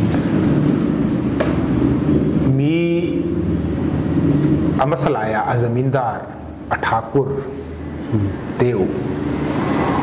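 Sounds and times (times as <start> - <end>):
man talking: 2.4 - 3.4, 4.8 - 9.1.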